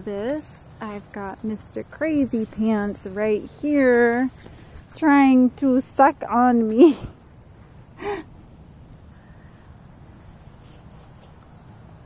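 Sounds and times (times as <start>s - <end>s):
low background hiss: 0.0s - 12.0s
person gasping: 8.0s - 8.3s.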